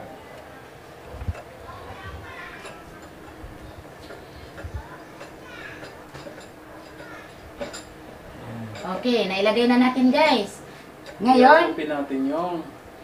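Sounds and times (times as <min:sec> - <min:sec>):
faint background voices: 0:00.0 - 0:09.2.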